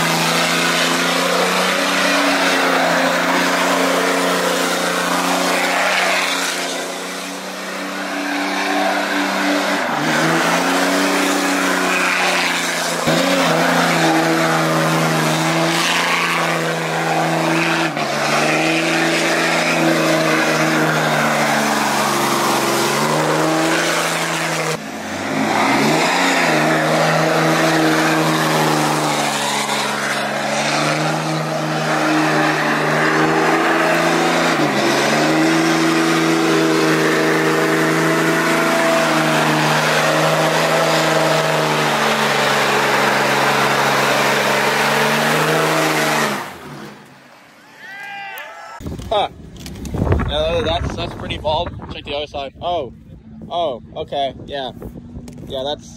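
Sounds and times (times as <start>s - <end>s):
truck engine at high revs: 0.0s - 47.6s.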